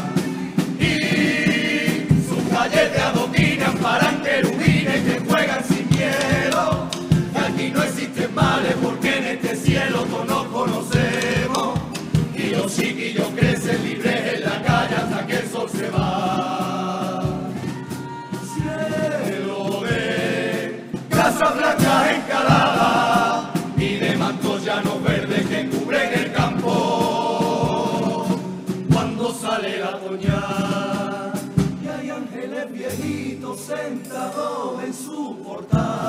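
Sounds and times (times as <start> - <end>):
bass drum strokes: 0.0 - 17.9
acoustic guitar: 0.0 - 36.0
male chorus singing: 0.0 - 36.0.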